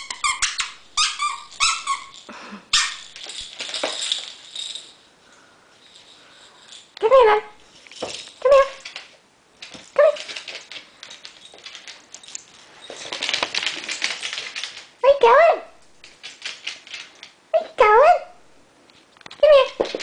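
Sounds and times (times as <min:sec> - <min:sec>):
puppy high-pitched yelps: 0:00.0 - 0:02.2, 0:02.8 - 0:03.1
rustling: 0:00.0 - 0:07.0, 0:07.6 - 0:15.0
puppy claws clicking on wood floor: 0:07.8 - 0:15.0, 0:16.0 - 0:17.4.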